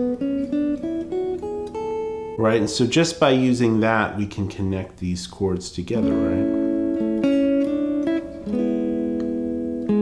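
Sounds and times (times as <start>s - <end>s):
electric guitar playing a scale: 0.0s - 3.8s, 6.0s - 10.0s.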